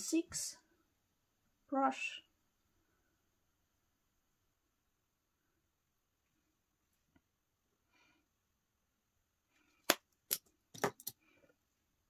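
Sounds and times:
makeup items clicking: 9.8s - 11.2s.

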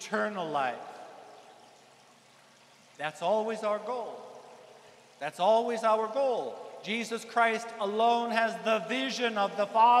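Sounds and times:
man's voice reverberating: 0.0s - 1.2s, 3.0s - 4.4s, 5.2s - 10.0s
faint room hiss: 0.0s - 10.0s.

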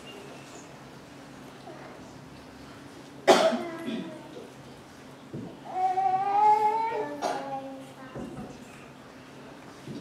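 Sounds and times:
person coughing: 3.3s - 4.1s.

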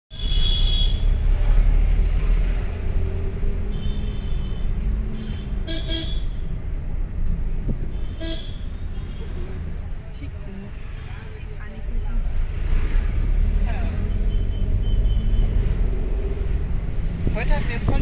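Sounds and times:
vehicle horns tooting: 0.1s - 1.2s, 3.7s - 6.4s, 7.8s - 9.6s, 14.0s - 15.6s
car engine and road rumble: 0.1s - 18.0s.

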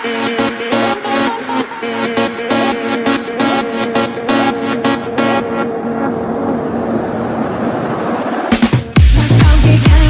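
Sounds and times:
whooshing noise sweep: 1.1s - 9.1s.

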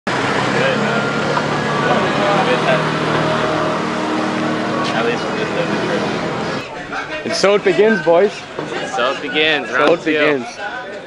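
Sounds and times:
vehicle engine running: 0.1s - 6.6s
people talking: 0.4s - 11.0s.

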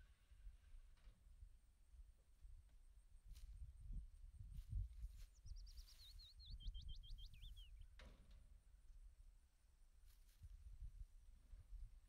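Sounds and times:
songbird singing: 2.9s - 8.1s.

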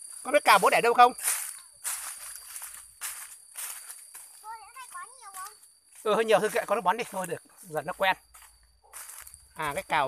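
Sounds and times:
insects droning: 0.0s - 10.0s
footsteps on dry leaves: 1.1s - 9.9s.

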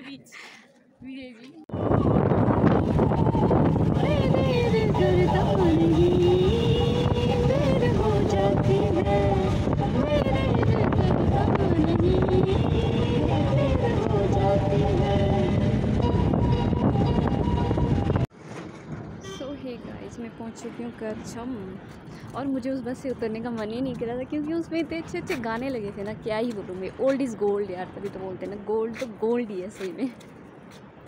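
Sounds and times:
bus engine and tyres rumbling: 0.0s - 31.0s.

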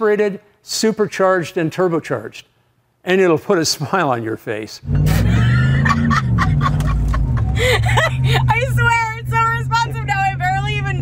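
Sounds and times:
truck engine accelerating: 4.8s - 11.0s
woman laughing: 5.1s - 9.2s.

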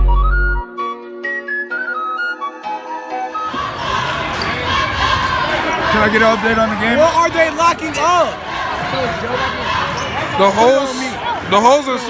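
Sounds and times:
flute tune: 0.0s - 3.7s
crowd chatter: 3.4s - 12.0s.

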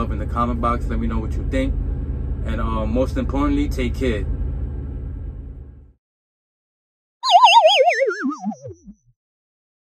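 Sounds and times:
cartoon boing sound effect: 7.2s - 9.0s.

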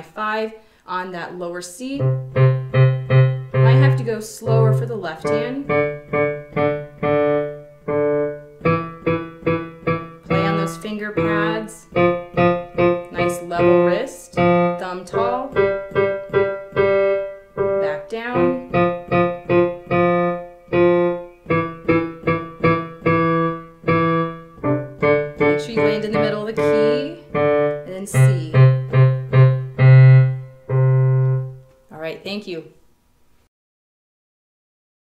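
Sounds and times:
digital piano played slowly: 2.0s - 31.9s.

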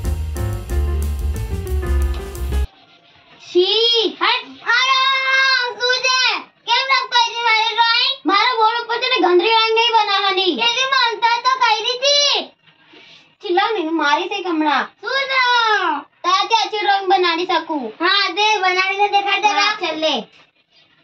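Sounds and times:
upbeat background music: 0.0s - 2.7s.

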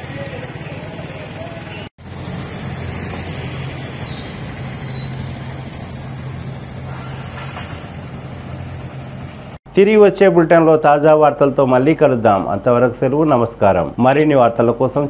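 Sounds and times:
traffic engine hum: 0.0s - 9.6s.

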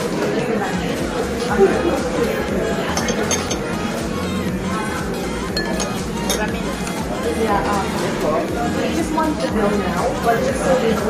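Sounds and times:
metal ladle clinking on ceramic bowl: 5.6s - 6.5s.

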